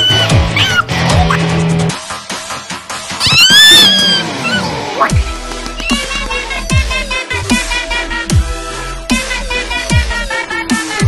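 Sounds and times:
background music: 0:00.0 - 0:11.0
high cat-like yowl: 0:03.2 - 0:05.0.

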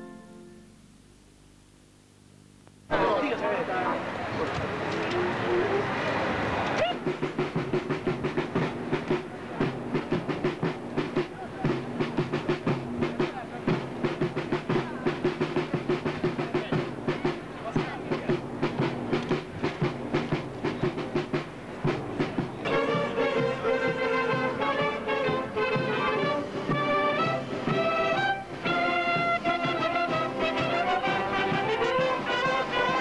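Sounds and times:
brass marching band playing: 0:00.0 - 0:00.6, 0:02.9 - 0:33.0
voices: 0:02.9 - 0:07.2, 0:11.0 - 0:19.6.

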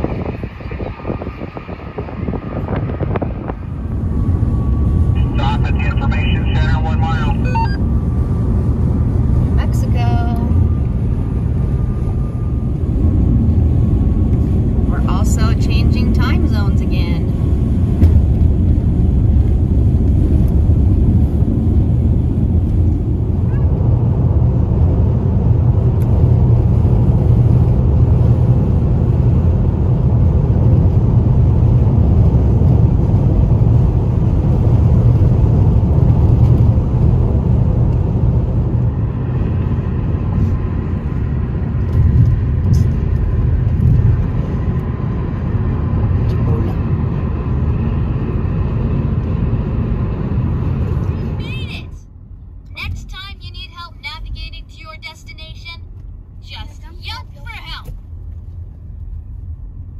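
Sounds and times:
tyre and engine rumble inside vehicle: 0:00.0 - 0:59.9.

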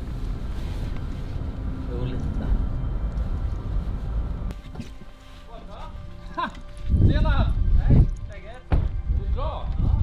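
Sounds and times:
car tyres and engine rumble: 0:00.0 - 0:05.0.

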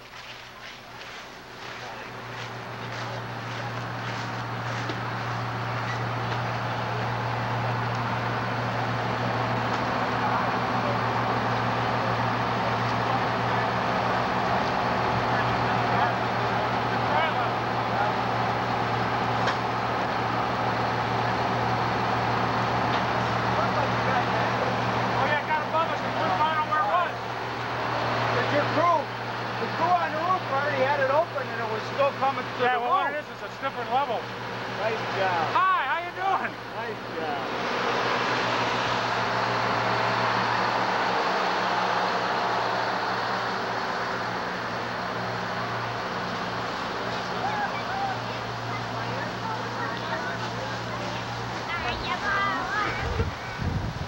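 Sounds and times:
fire engine pump drone: 0:00.0 - 0:54.0
voices: 0:00.0 - 0:54.0.

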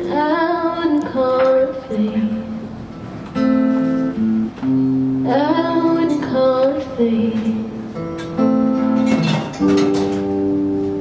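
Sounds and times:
strummed acoustic guitar: 0:01.2 - 0:11.0.

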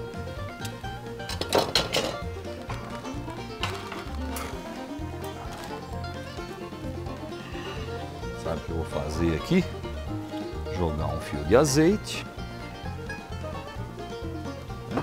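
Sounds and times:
background music with bass line: 0:00.0 - 0:15.0.

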